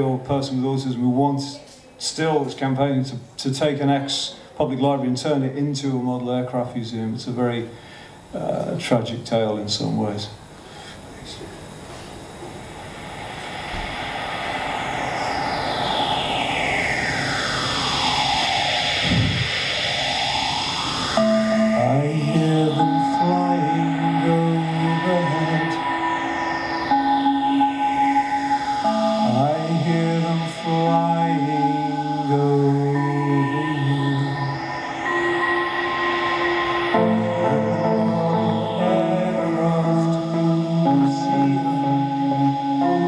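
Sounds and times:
held synth notes: 0:11.5 - 0:43.0
whooshing synth sweep: 0:11.7 - 0:43.0.

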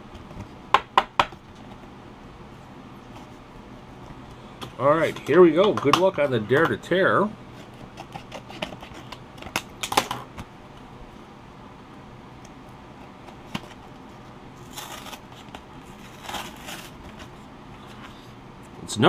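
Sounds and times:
paper card being torn open: 0:14.6 - 0:17.3.

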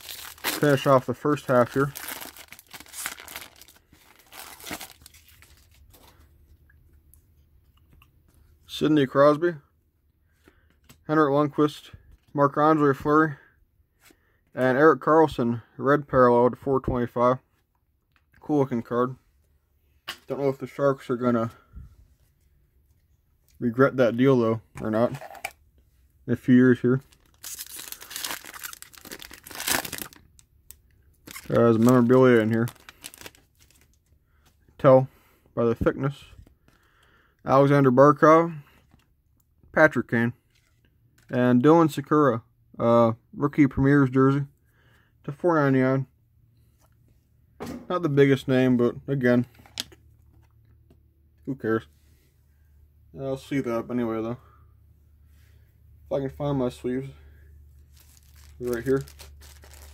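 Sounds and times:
foil wrapper tearing and crinkling: 0:00.0 - 0:05.8, 0:27.1 - 0:30.4, 0:31.2 - 0:33.9, 0:57.9 - 0:59.9
faint rustling of cards: 0:00.0 - 0:08.7, 0:18.3 - 0:37.1, 0:40.2 - 0:41.4, 0:49.2 - 0:51.0, 0:55.4 - 0:59.9.

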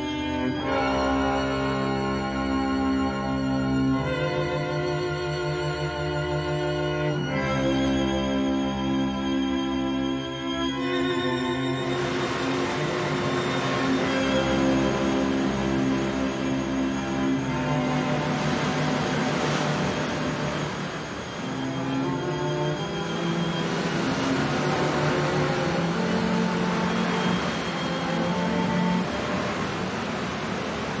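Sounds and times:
bowed string music: 0:00.0 - 0:31.0
surf washing over rocks: 0:10.7 - 0:31.0.

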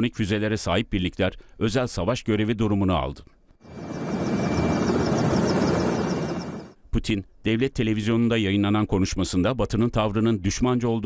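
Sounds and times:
helicopter rotor and engine: 0:03.7 - 0:06.8.

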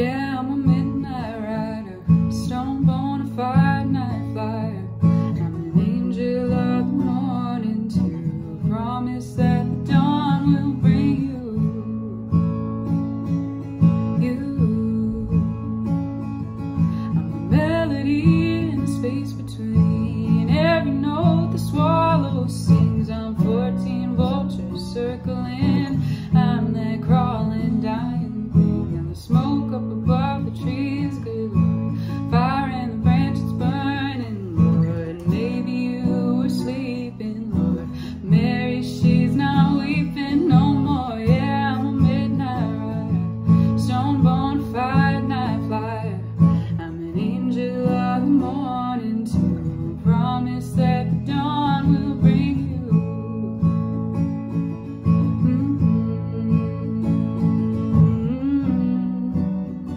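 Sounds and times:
acoustic guitar strumming: 0:00.0 - 0:59.9
woman singing: 0:00.0 - 0:59.9.

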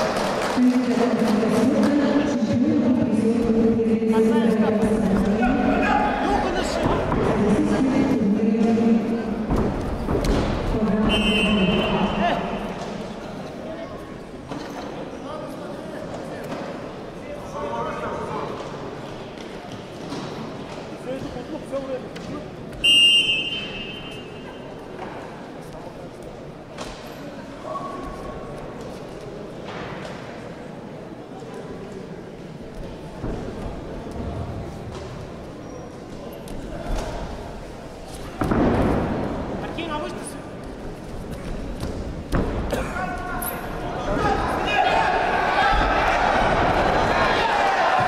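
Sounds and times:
referee's whistle: 0:11.0 - 0:12.2, 0:22.8 - 0:24.4
voices shouting in sports hall: 0:42.7 - 0:48.0.

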